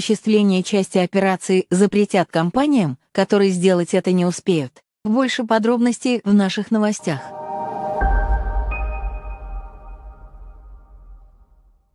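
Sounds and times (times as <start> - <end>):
electronic chord sting: 7.0 - 11.8
deep bass rumble: 7.5 - 11.6.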